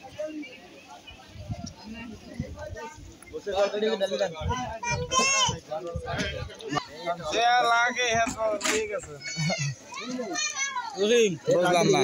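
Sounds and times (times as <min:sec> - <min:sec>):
voices talking: 0:00.0 - 0:12.0
children calling out: 0:09.1 - 0:12.0.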